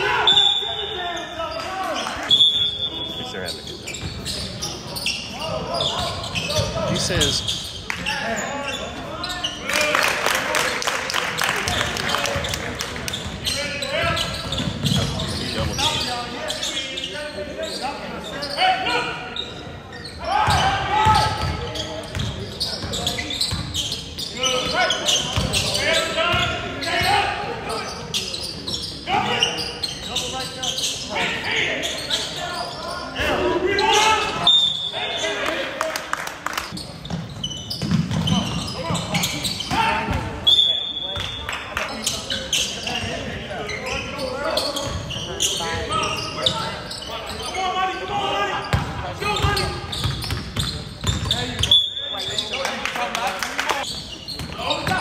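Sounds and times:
voices of players and spectators: 0.0 - 55.0.

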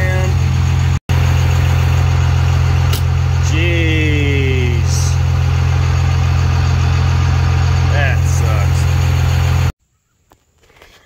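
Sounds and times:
vehicle engine idling: 0.0 - 9.8.

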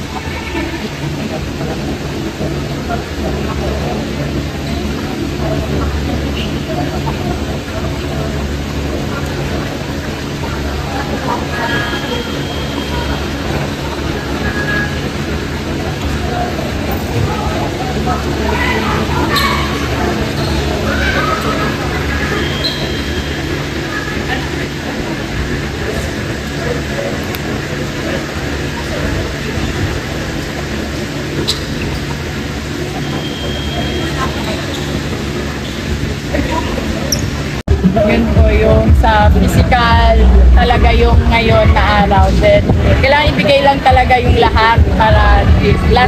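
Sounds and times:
air coolers humming: 0.0 - 46.0
industrial fans rumbling: 0.0 - 46.0.

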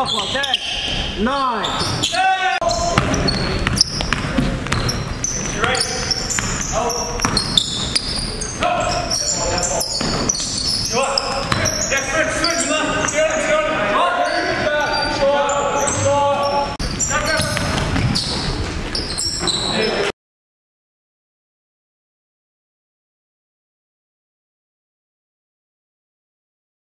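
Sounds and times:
players calling out: 0.0 - 20.1
basketball bouncing on wooden floor: 2.7 - 9.2, 9.9 - 11.9.

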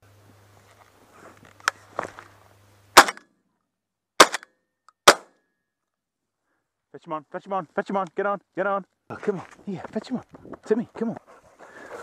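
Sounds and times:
shotgun shots: 3.0 - 3.2, 4.2 - 4.4, 5.0 - 5.3.

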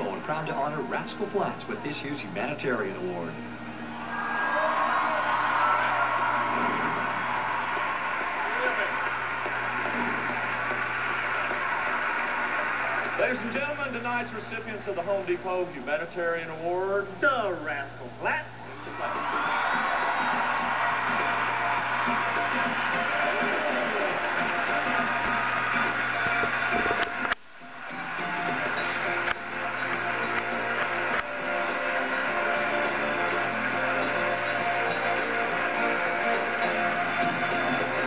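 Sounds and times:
low electrical hum: 0.0 - 38.0
audience applause through tv speaker: 3.9 - 15.3, 18.8 - 38.0.

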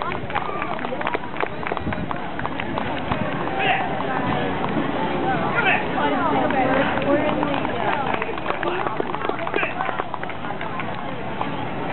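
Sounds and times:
crowd chatter: 0.0 - 11.9.

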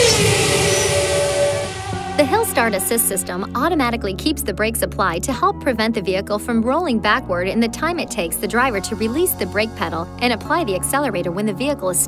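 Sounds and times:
whoosh with falling tone: 0.0 - 3.3
held note: 0.0 - 3.5.

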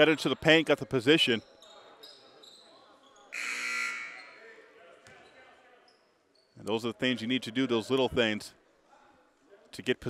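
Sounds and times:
gymnasium buzzer: 3.3 - 4.4.

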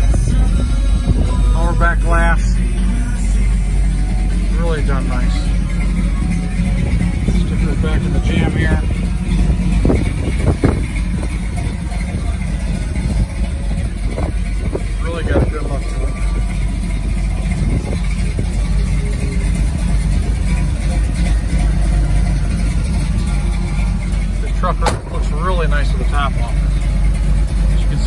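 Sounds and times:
engine idling: 0.0 - 28.0.

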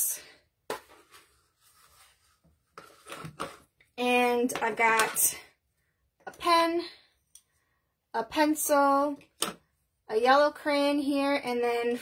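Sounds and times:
faint rubbing and handling: 0.7 - 3.8.

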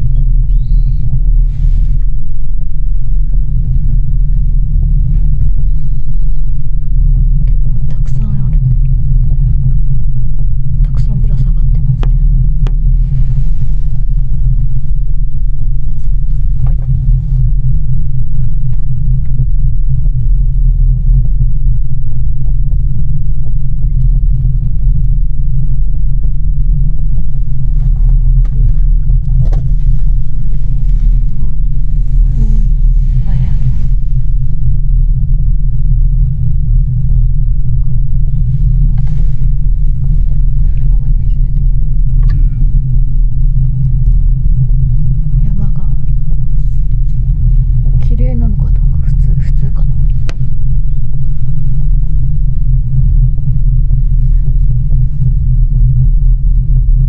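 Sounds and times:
gondola cabin low rumble: 0.0 - 57.0.

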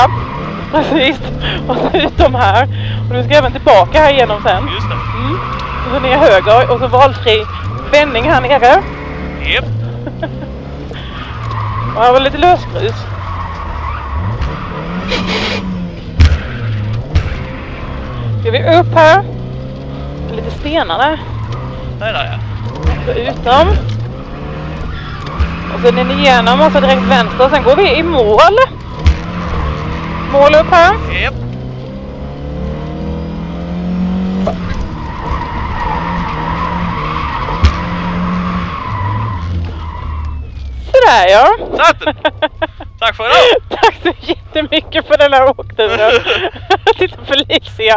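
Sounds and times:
rally car engine revving: 0.0 - 47.9.

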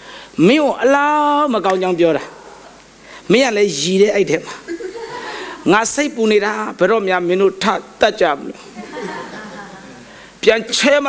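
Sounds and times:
man speaking: 0.4 - 2.5, 3.3 - 4.7, 5.6 - 8.7, 9.9 - 11.0
chuckling: 4.6 - 5.7, 8.7 - 10.1.

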